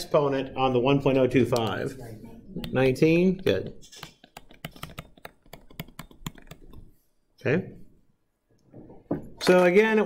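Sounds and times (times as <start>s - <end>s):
stylus tapping on tablet screen: 4.0s - 7.0s.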